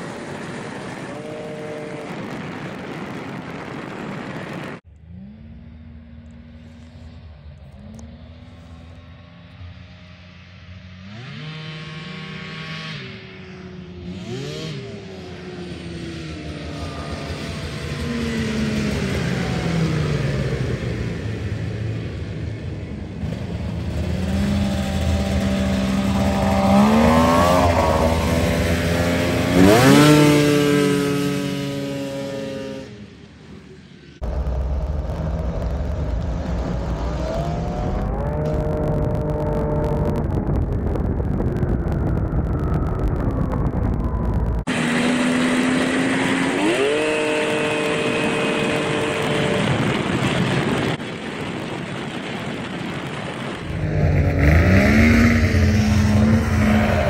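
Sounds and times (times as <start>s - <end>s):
snowmobile engine revving: 0.0s - 2.7s, 4.4s - 33.2s, 34.2s - 41.9s, 43.3s - 51.0s, 53.1s - 57.0s.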